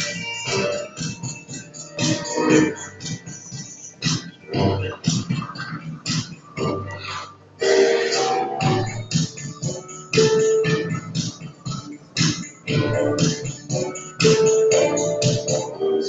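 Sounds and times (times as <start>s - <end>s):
dance music with plucked guitar: 0.0s - 15.8s.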